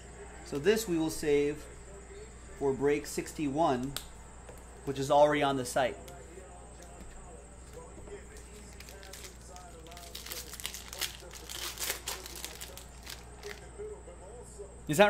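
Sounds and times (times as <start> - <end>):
cards scraping and ticking: 6.2 - 13.7.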